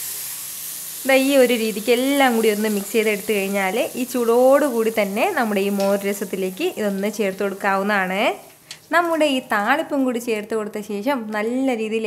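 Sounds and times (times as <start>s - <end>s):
spices sizzling in hot oil: 0.0s - 10.5s
woman talking: 1.1s - 12.0s.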